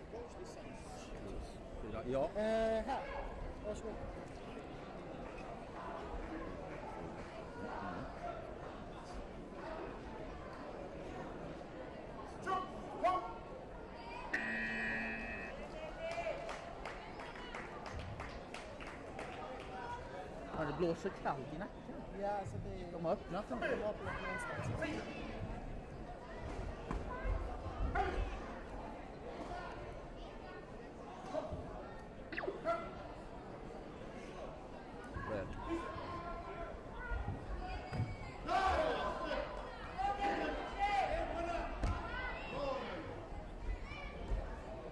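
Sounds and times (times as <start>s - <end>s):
crowd chatter: 0.0s - 44.9s
voices in a hall: 0.0s - 44.9s
electronic buzzer tone: 14.3s - 15.6s.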